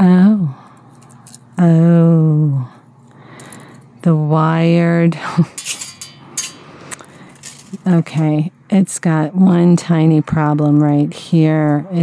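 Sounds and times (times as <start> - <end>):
beads clinking: 5.6 - 7.9.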